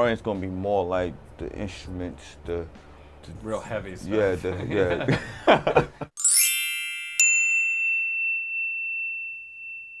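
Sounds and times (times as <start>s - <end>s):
bell-like chime cascade: 6.2s - 10.0s
bright ringing ding: 6.2s - 10.0s.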